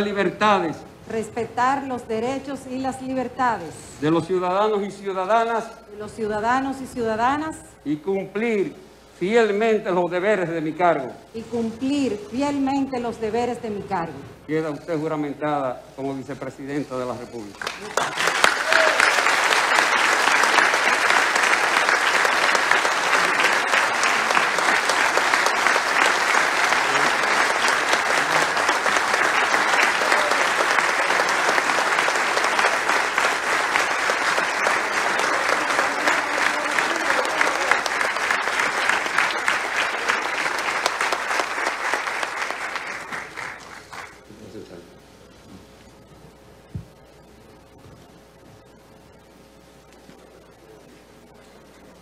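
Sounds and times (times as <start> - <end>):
large crowd applauding: 17.5 - 44.3.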